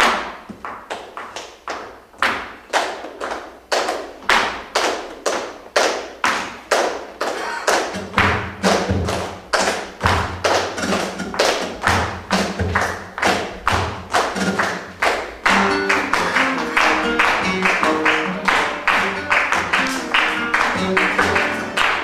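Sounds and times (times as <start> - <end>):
low band notes: 7.5 - 22.0.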